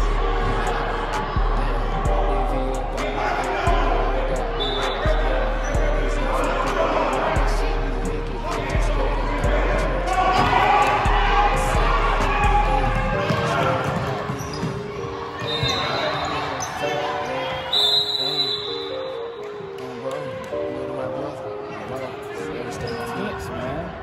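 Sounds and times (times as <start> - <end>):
shoe squeak: 14.0 - 19.2.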